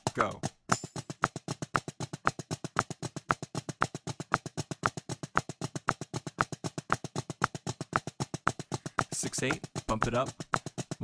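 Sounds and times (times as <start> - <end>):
drumsticks playing fast flam taps: 0.0 - 11.0.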